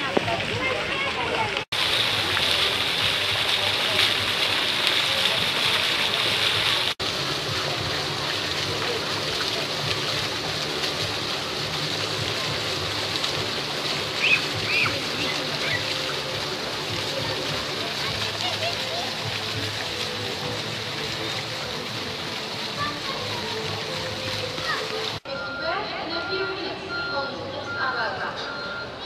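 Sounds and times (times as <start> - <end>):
fountain jets splashing into pool: 0.0 - 29.0
murmur of voices: 0.0 - 29.0.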